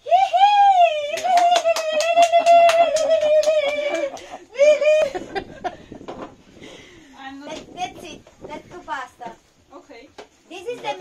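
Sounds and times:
woman's high cry of delight: 0.0 - 5.2
quick hand clapping: 1.1 - 4.4
laughter: 1.4 - 6.0.

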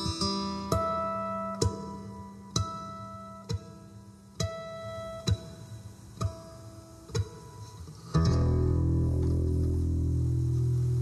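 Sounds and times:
acoustic guitar chord: 7.2 - 11.0.

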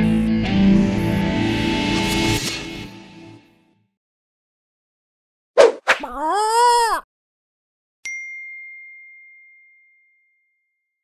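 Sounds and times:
bell-like ding: 8.0 - 10.8.

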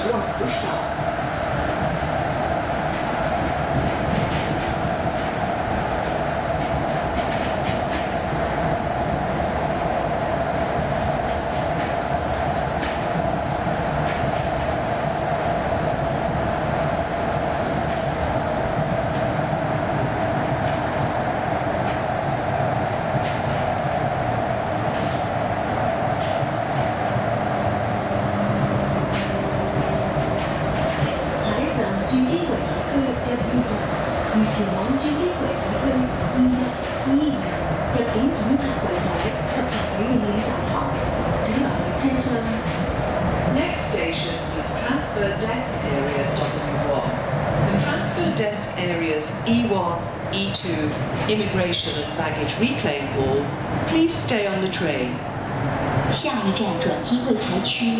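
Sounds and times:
train rolling rumble: 0.0 - 57.9
train whine: 0.0 - 57.9.

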